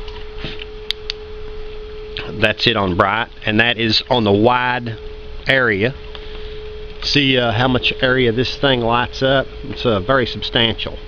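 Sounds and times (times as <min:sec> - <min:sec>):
high-pitched hum: 0:00.0 - 0:11.0.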